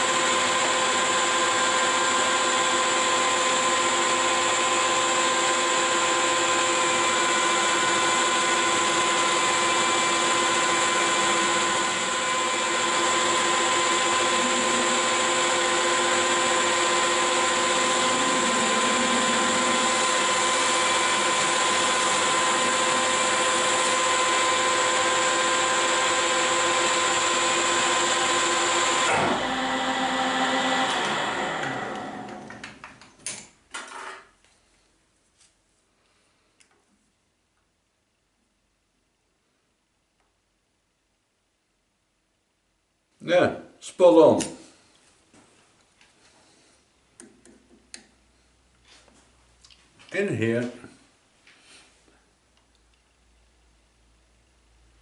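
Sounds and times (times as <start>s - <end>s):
metal lathe gear whine: 1.6s - 32.4s.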